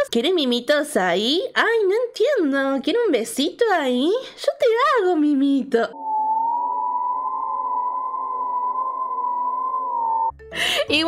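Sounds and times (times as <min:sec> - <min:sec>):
high-pitched electronic tone: 0:05.9 - 0:10.3.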